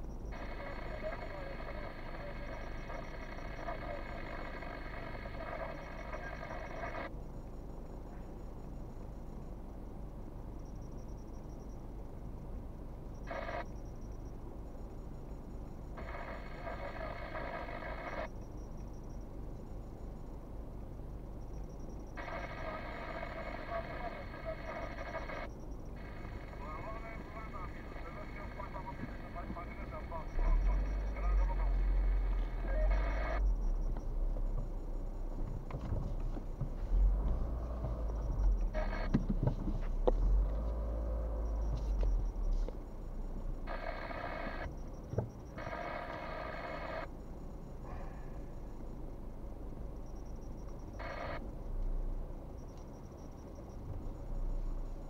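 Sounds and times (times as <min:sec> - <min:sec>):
faint voice over phone line: 0:00.3 - 0:07.1, 0:16.0 - 0:18.3, 0:22.1 - 0:33.8, 0:36.7 - 0:42.7
car rumble: 0:28.8 - 0:45.7, 0:47.0 - 0:55.0.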